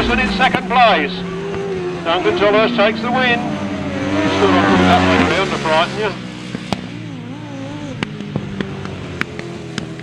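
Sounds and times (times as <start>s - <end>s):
racing engines running: 0.0s - 10.0s.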